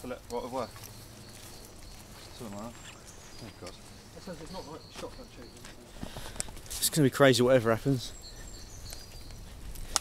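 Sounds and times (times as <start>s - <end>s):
small bird chirping: 0.0s - 9.9s
low rumble of wind: 0.0s - 10.0s.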